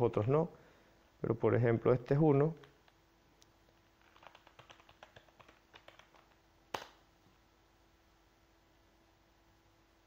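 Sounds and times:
computer keyboard typing: 0:04.0 - 0:06.9.

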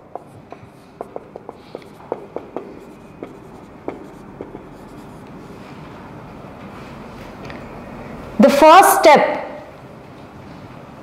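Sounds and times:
marker pen squeaking on whiteboard: 0:00.1 - 0:05.2.

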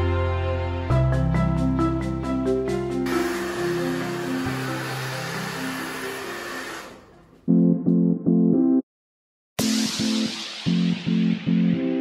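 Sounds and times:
hair dryer blowing: 0:03.0 - 0:07.2.

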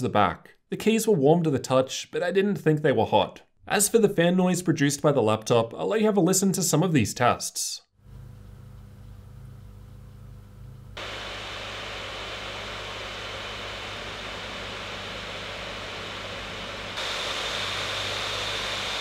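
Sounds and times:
high fan whine: 0:08.1 - 0:19.0
laptop fans rushing air: 0:10.9 - 0:19.0.

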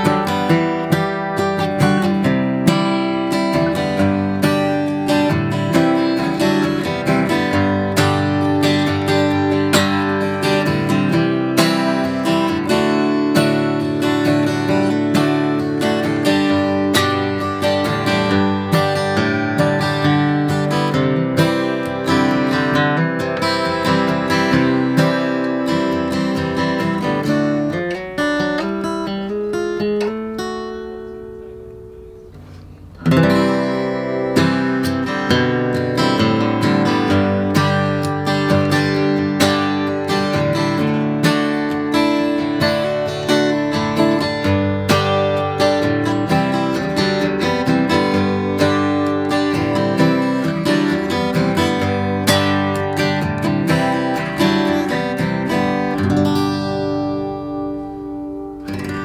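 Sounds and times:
acoustic guitar playing: 0:00.0 - 0:59.0.

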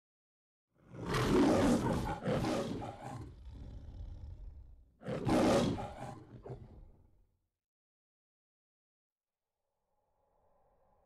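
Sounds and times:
lion roaring: 0:00.9 - 0:07.0.

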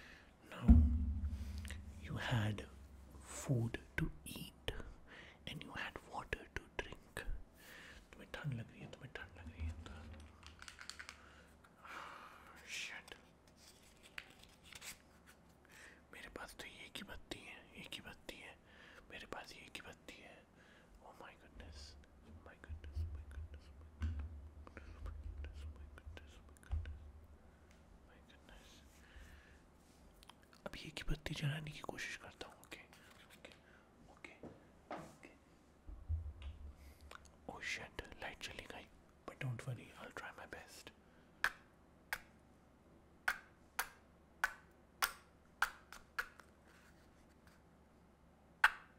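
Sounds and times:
soft whispering: 0:00.0 - 0:10.4, 0:11.8 - 0:13.7, 0:15.9 - 0:24.0, 0:24.6 - 0:27.1, 0:28.0 - 0:29.5, 0:30.2 - 0:35.6, 0:36.8 - 0:41.0
low rumbles: 0:00.5 - 0:03.2
small clicks and handling noises: 0:10.0 - 0:11.8.

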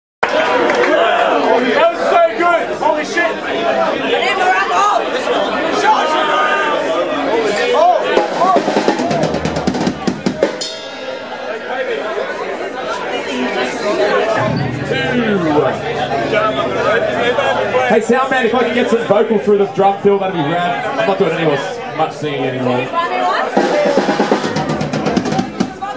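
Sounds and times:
crowd chatter: 0:00.2 - 0:25.9
drum kit played loosely: 0:08.2 - 0:12.3, 0:14.4 - 0:19.3, 0:23.5 - 0:25.9
low steady note: 0:14.3 - 0:22.0
sharp loud drum hit: 0:14.4 - 0:19.0.

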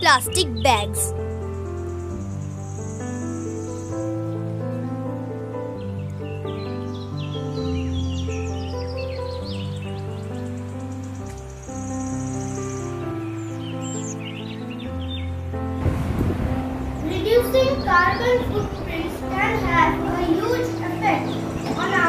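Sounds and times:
birds chirping: 0:00.0 - 0:04.3, 0:16.9 - 0:22.0
slow music with held chords: 0:01.3 - 0:22.0.

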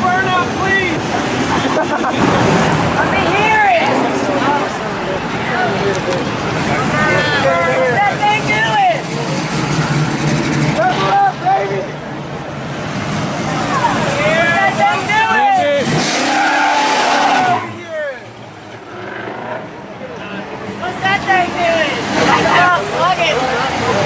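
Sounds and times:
spectators' voices: 0:00.0 - 0:24.0
car engines revving past: 0:00.1 - 0:24.0.

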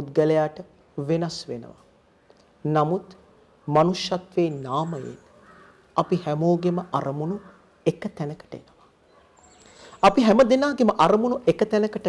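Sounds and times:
man speaking: 0:00.0 - 0:01.8, 0:02.6 - 0:05.3, 0:06.0 - 0:08.8, 0:10.0 - 0:12.0.

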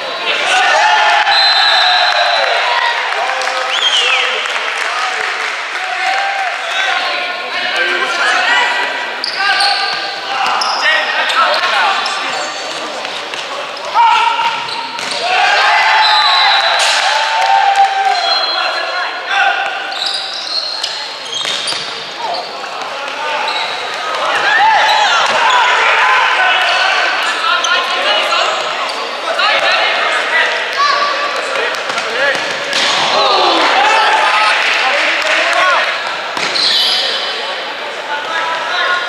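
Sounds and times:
players shouting: 0:00.0 - 0:13.0, 0:13.6 - 0:20.4, 0:22.2 - 0:37.4.

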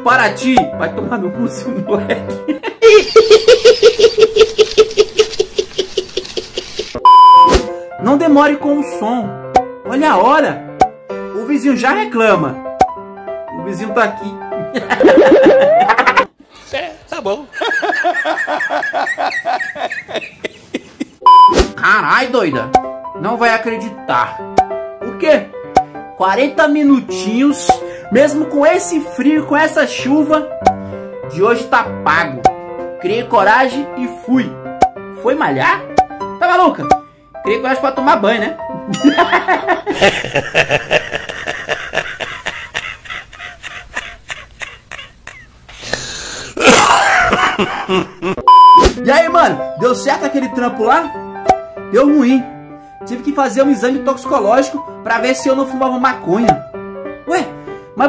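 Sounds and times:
high-pitched rapid laugh: 0:02.7 - 0:07.0, 0:14.9 - 0:16.3, 0:39.1 - 0:45.8, 0:46.7 - 0:48.4
loud steady bleep: 0:07.0 - 0:07.5, 0:21.3 - 0:21.6, 0:48.5 - 0:48.9
man laughing breathily: 0:17.8 - 0:21.2, 0:39.6 - 0:48.5
short breaths: 0:45.7 - 0:46.6.

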